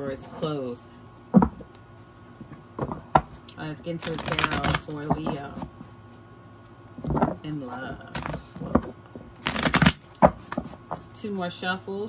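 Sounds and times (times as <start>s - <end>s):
cards shuffling: 2.3s - 7.4s, 8.0s - 11.1s.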